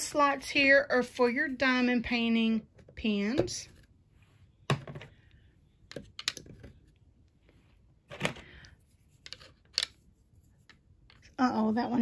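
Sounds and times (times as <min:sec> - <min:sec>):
plastic pens clicking on wood tray: 0:05.9 - 0:06.5, 0:09.2 - 0:10.0.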